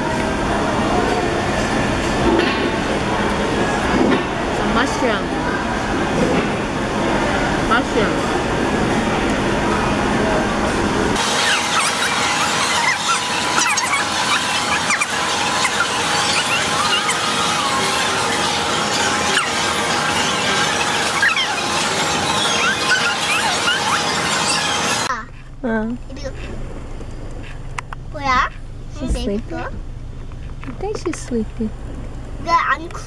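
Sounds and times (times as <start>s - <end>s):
crowd of voices: 0.0s - 25.2s
short high-pitched squeals: 11.2s - 25.1s.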